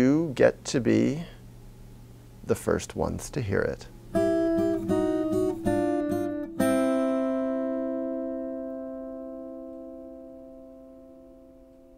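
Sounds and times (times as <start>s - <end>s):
strummed guitar chords: 4.1s - 11.9s.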